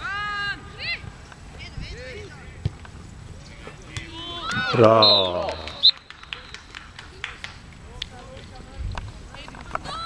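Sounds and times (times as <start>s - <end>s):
distant shouts from players: 3.6s - 6.0s.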